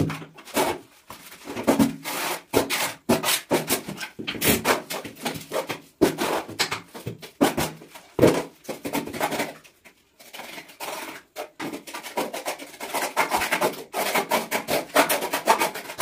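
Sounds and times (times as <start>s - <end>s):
trowel scraping cement mortar: 0.4s - 6.8s, 8.7s - 16.0s.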